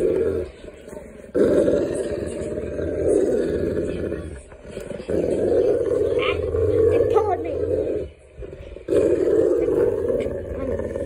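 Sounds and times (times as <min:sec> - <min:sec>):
dog growling: 0:00.0 - 0:11.0.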